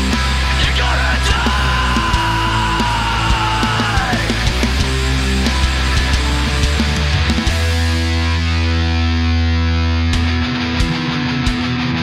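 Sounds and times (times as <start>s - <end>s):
distorted electric guitar and bass chord: 0.0s - 12.0s.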